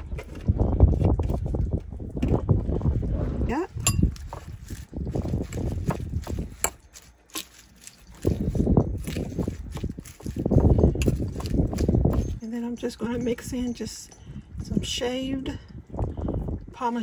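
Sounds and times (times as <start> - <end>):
wet lettuce leaves rustling: 3.5 - 12.4.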